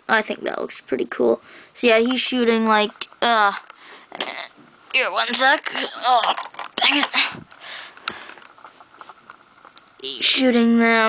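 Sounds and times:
faint handling noise: 6.1 - 10.0.

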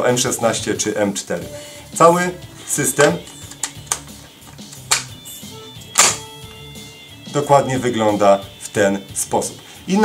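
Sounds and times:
quiet background music: 0.0 - 10.0
magazine clicking into place: 3.3 - 5.2, 5.9 - 6.3.

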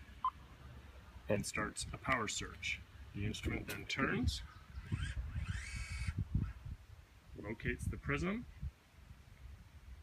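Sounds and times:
servo drive whining: 4.8 - 6.6.

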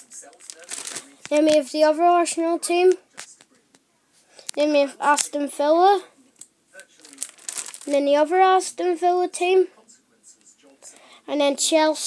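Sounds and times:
plastic binder pages crinkling: 0.0 - 1.8, 3.1 - 3.6, 4.4 - 5.4, 6.8 - 8.1.

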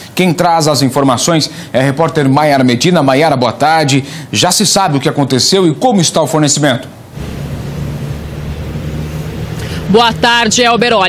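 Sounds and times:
truck engine drone: 7.0 - 11.0
cars passing: 7.1 - 11.0.

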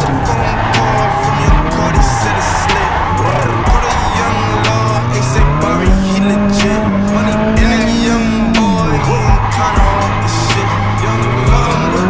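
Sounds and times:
music playing: 0.0 - 12.0
turbocharged car engine revving: 0.0 - 12.0
tyres squealing: 0.0 - 12.0.

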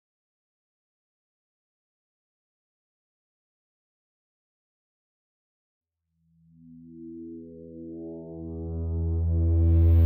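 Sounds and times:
electronic synthesizer music: 6.4 - 10.0.

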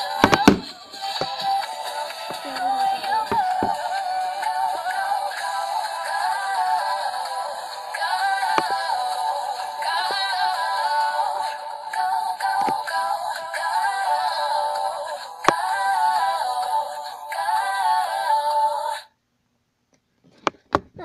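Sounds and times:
backing music: 0.0 - 14.9
girl singing: 0.0 - 19.0.

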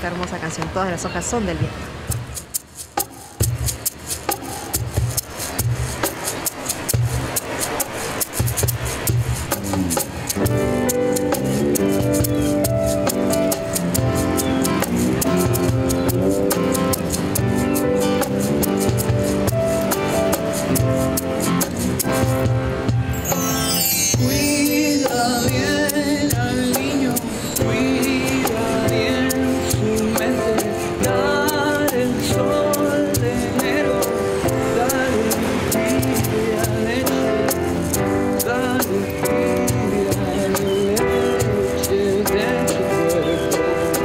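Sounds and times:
cajon beat: 1.5 - 44.0
acoustic guitar: 1.7 - 44.0
synthesizer: 7.1 - 44.0
electric bass: 8.6 - 23.2.

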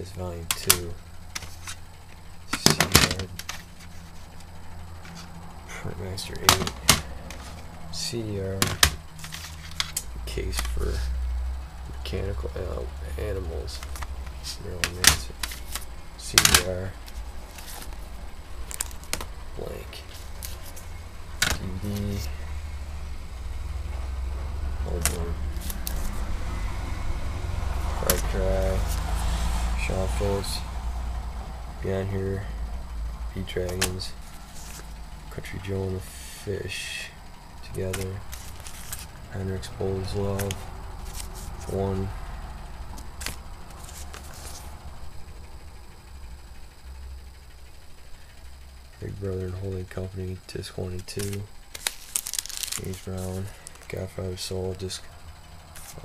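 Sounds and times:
low steady rumble: 0.0 - 56.0
plastic cases clacking: 0.5 - 1.8, 2.5 - 4.2, 6.4 - 7.7, 8.6 - 11.0, 13.7 - 19.4, 21.4 - 22.3, 40.1 - 41.8, 51.0 - 54.0.

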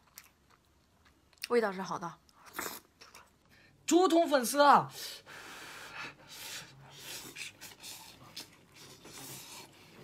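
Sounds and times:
person slurping noodles: 6.6 - 10.0.

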